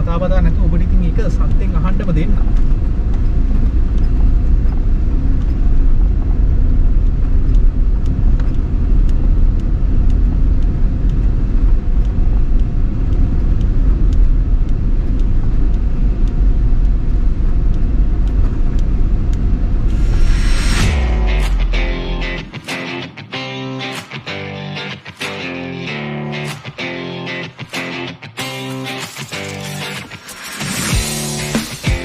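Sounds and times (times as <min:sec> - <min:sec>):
suv engine and tyres rumbling: 0:00.0 - 0:22.6.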